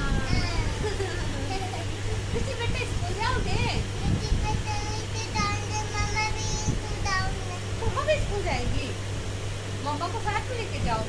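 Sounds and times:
child singing high: 0:00.0 - 0:01.0, 0:04.0 - 0:07.7
steady low hum: 0:00.0 - 0:11.0.

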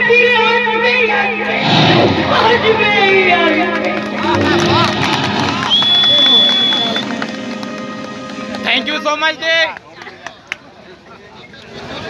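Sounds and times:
live music over loudspeakers: 0:00.0 - 0:09.7.

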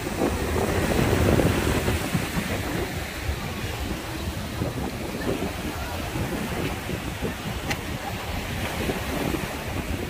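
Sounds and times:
small waves washing on sand: 0:00.0 - 0:10.0
wind buffeting microphone: 0:00.0 - 0:10.0.

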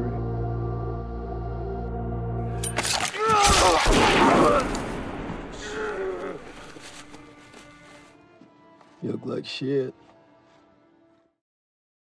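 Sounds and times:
person groaning: 0:05.6 - 0:06.6.

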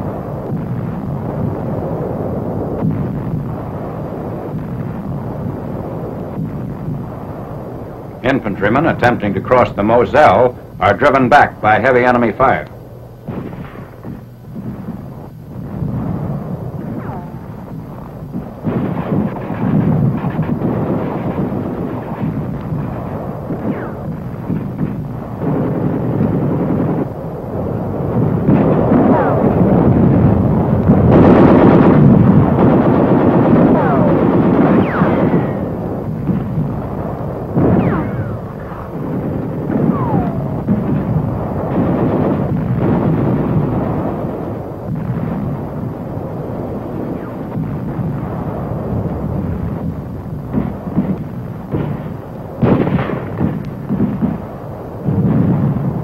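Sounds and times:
shell explosions: 0:00.0 - 0:56.0
gunfire: 0:12.2 - 0:56.0.

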